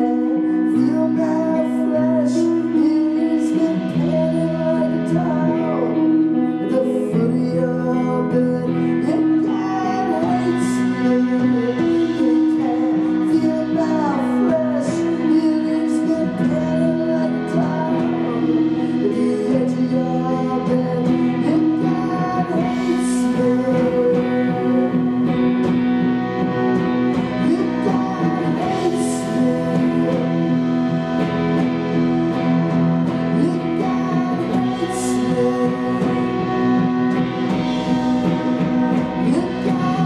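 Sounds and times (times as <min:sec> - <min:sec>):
electric guitar and bass chords: 0:00.0 - 0:40.0
live rock band instrumental: 0:00.0 - 0:40.0.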